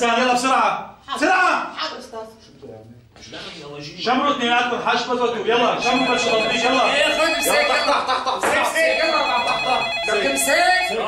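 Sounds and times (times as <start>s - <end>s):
voices: 5.7s - 11.0s
desk telephone ringing: 5.8s - 11.0s.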